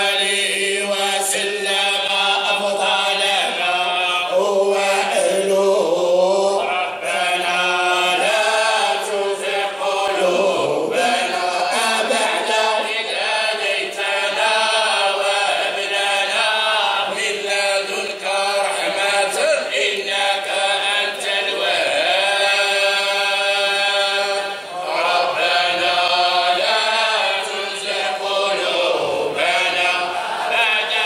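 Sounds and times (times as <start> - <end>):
men chanting: 0.0 - 31.0.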